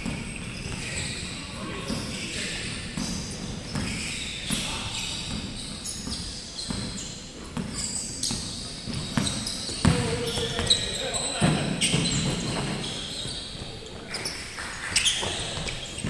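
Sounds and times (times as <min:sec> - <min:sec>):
sneakers squeaking: 0:00.0 - 0:16.0
basketball bouncing on hardwood: 0:08.4 - 0:10.7.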